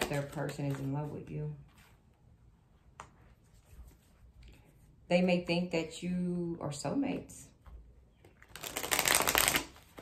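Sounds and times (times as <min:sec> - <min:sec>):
cards being shuffled: 0:00.0 - 0:01.9, 0:08.3 - 0:10.0.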